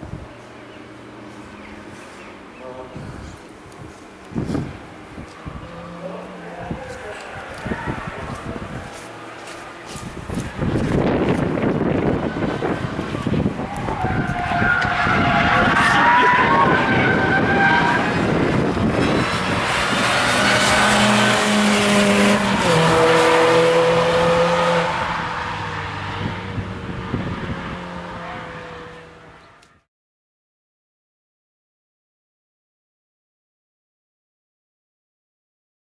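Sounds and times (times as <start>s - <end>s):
car engine at high revs: 4.3s - 29.7s
car tyres squealing: 4.4s - 29.5s.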